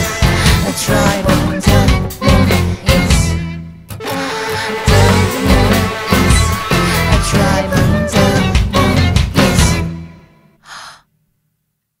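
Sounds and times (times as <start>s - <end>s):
music: 0.0s - 10.7s
short breath or gasp: 10.6s - 11.1s.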